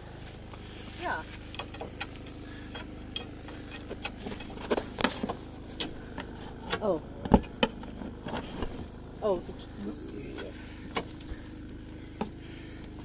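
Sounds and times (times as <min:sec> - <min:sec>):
generator humming: 0:00.0 - 0:13.0.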